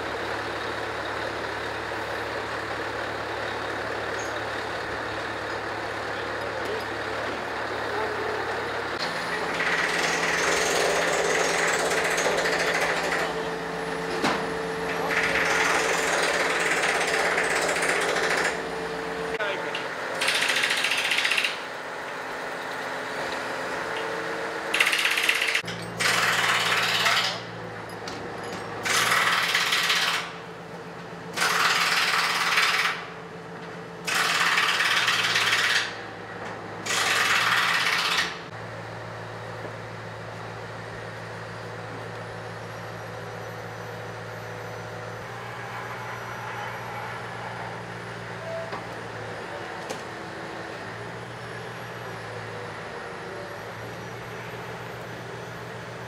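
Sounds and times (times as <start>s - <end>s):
diesel engine running: 0.0s - 56.0s
loud rattling bursts: 9.4s - 13.3s, 15.0s - 18.6s, 20.1s - 21.7s, 24.7s - 27.4s, 28.8s - 30.3s, 31.3s - 33.0s, 34.0s - 35.9s, 36.8s - 38.4s.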